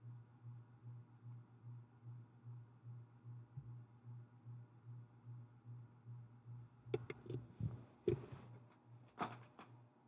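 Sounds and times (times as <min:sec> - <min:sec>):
faint pulsing low hum: 0:00.0 - 0:09.1.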